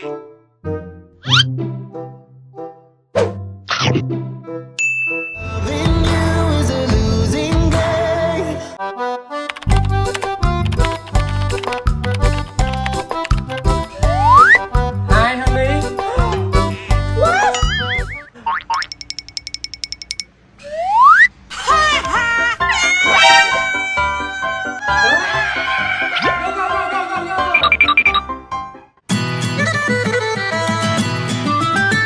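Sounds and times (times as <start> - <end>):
background music: 0.0 - 18.4, 21.5 - 32.0
bright ringing ding: 4.8 - 5.4
rapid even ticks: 9.5 - 13.8.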